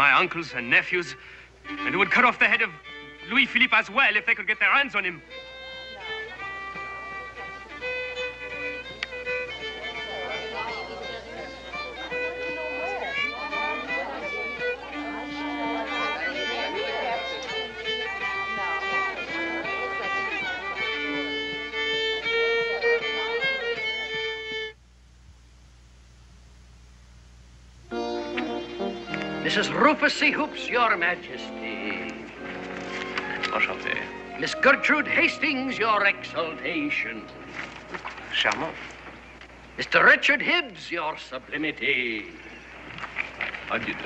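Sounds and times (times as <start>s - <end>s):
fiddle playing a tune: 0.0s - 24.8s, 27.9s - 44.0s
faint hiss: 0.0s - 44.0s.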